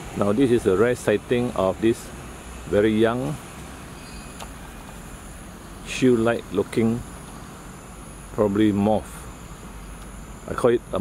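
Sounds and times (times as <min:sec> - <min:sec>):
high insect trill: 0:00.0 - 0:11.0
low even hum: 0:00.0 - 0:11.0.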